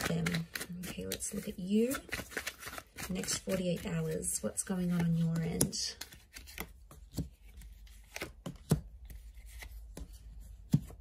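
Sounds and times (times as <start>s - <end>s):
cards tapping and sliding on table: 5.3s - 11.0s.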